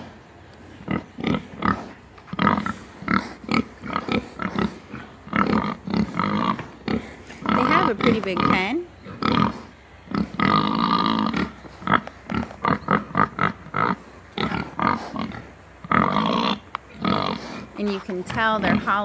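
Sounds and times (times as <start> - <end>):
hogs grunting: 0.7 - 19.0.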